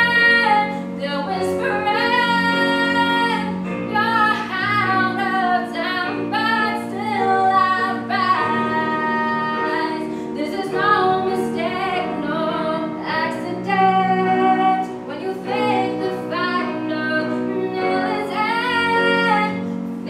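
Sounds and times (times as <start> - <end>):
girl singing into a microphone: 0.0 - 19.6
instrumental accompaniment: 0.0 - 20.0.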